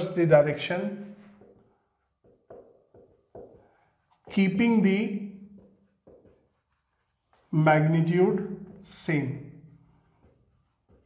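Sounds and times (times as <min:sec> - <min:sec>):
man speaking: 0:00.0 - 0:01.2, 0:04.3 - 0:05.4, 0:07.5 - 0:09.6
marker pen writing on whiteboard: 0:00.0 - 0:11.0.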